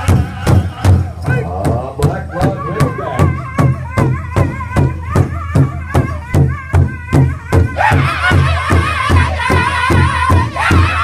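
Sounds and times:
large drum beat: 0.0s - 11.0s
group singing in high voices: 7.5s - 11.0s.

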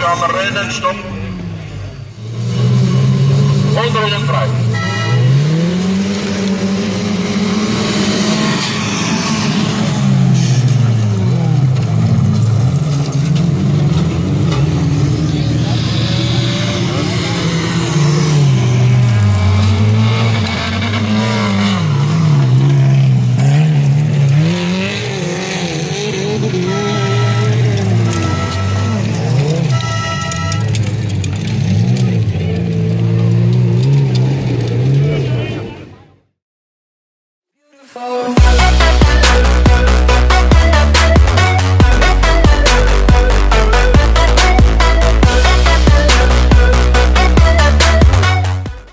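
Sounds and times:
car engines revving: 0.0s - 36.3s, 38.3s - 48.9s.

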